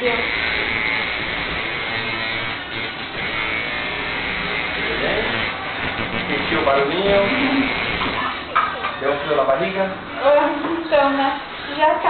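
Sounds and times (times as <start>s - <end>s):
tattoo machine buzzing: 0.0s - 8.4s.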